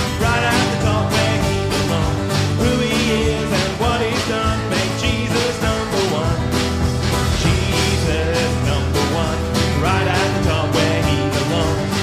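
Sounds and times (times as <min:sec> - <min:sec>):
drum kit beat: 0:00.0 - 0:12.0
man singing: 0:00.0 - 0:12.0
strummed acoustic guitar: 0:00.0 - 0:12.0.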